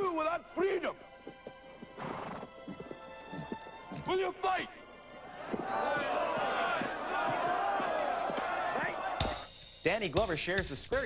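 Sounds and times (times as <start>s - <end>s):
orchestral music: 0.0s - 9.8s
horse hooves galloping: 0.2s - 9.4s.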